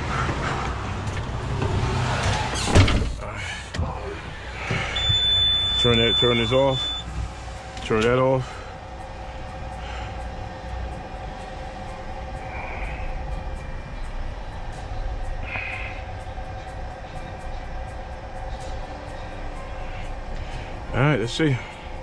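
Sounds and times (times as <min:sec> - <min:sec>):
low mechanical rumble: 0:00.0 - 0:22.0
faint steady hum: 0:02.9 - 0:22.0.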